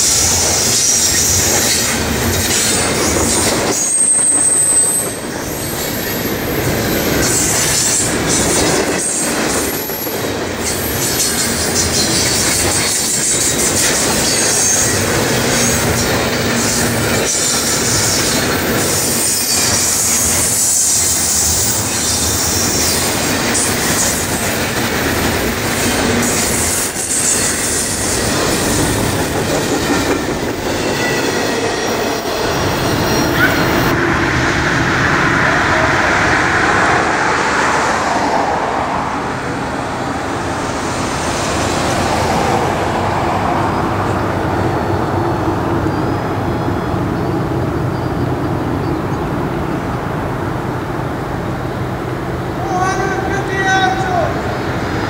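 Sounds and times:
clickety-clack over rail joints: 0.0 - 6.0, 6.6 - 34.0
freight train wheels on rails: 0.0 - 55.0
high-pitched wheel squeal: 0.1 - 8.1.

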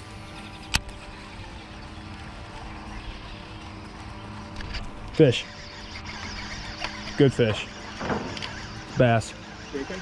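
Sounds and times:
low hum: 0.0 - 10.0
fishing reel cranking: 4.6 - 10.0.

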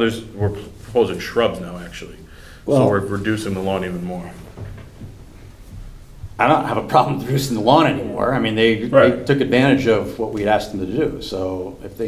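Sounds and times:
man speaking: 0.0 - 4.5, 6.4 - 12.0
faint knocks: 4.4 - 6.4.

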